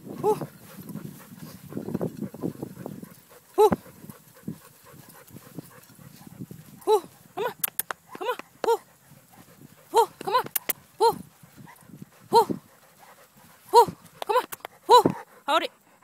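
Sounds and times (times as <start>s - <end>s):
sharp clicks: 7.6s - 8.5s, 10.2s - 10.8s.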